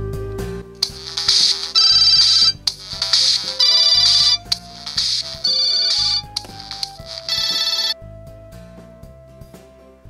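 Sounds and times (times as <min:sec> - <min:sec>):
smartphone alarm tone: 0:00.8 - 0:08.0.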